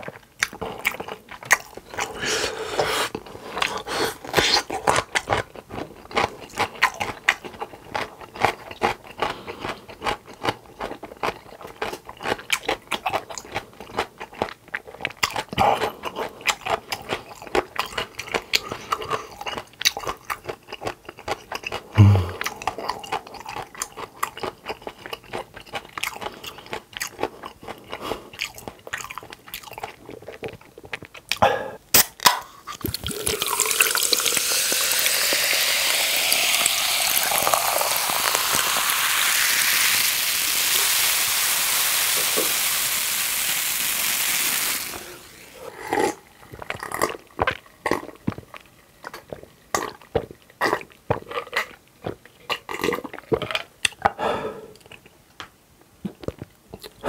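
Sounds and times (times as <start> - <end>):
chewing and crunching food: 0.0 - 39.1, 45.4 - 57.0
gulps of drinking: 21.9 - 23.1
cola poured over ice fizzing: 32.8 - 45.6.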